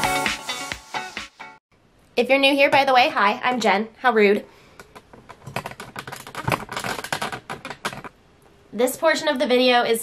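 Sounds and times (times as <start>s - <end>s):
laptop keyboard typing: 5.2s - 8.1s.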